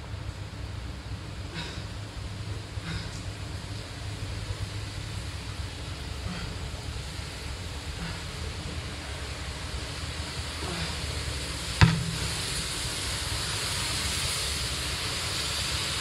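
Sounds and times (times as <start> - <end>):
rain on paving: 2.2 - 16.0
football thump: 11.8 - 12.8.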